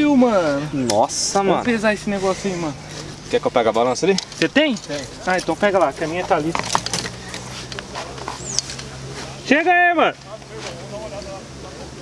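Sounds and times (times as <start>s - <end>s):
faint background voices: 0.0s - 12.0s
bird chirp: 7.1s - 8.9s.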